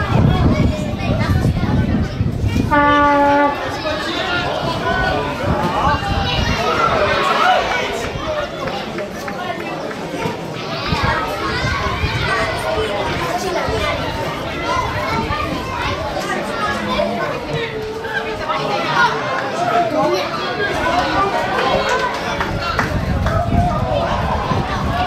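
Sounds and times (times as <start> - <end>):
spectators chattering: 0.0 - 25.0
children calling out: 2.6 - 25.0.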